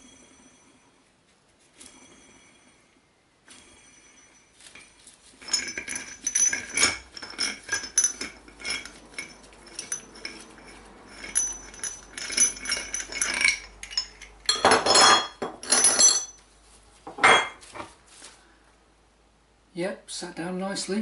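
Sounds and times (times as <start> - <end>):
scraping rattle of metal: 3.6 - 16.4
metal parts clinking and knocking: 4.6 - 16.4.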